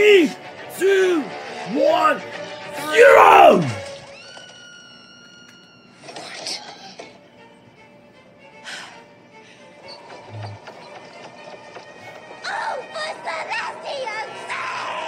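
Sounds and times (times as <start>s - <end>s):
film music through small speaker: 0.0s - 15.0s.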